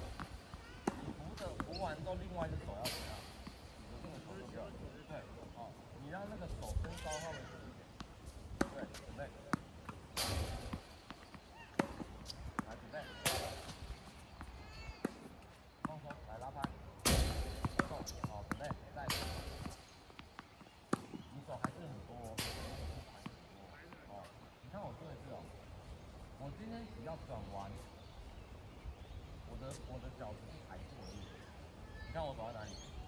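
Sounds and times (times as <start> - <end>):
tennis balls hit with rackets: 0.0 - 5.4, 6.2 - 24.4
balls bouncing on hard court: 8.0 - 23.4.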